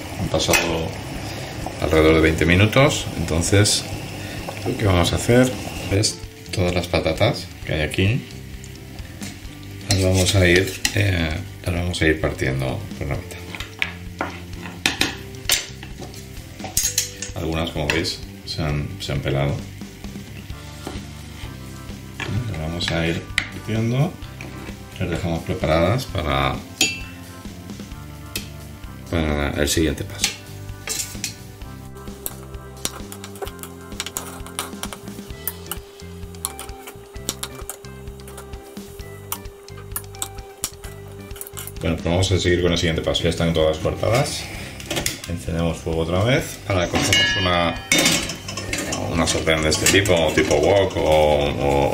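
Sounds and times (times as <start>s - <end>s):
background music: 0.0s - 51.9s
metal spoon clinking on pot: 16.8s - 17.4s, 26.8s - 27.1s, 47.0s - 49.2s.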